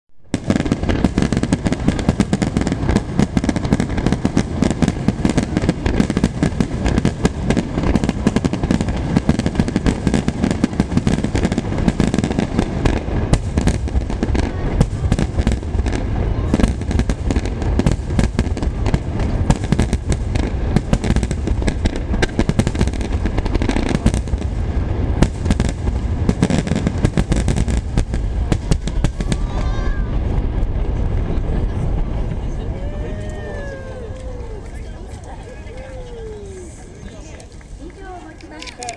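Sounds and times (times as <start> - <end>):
fireworks bangs and crackles: 0.2 - 38.9.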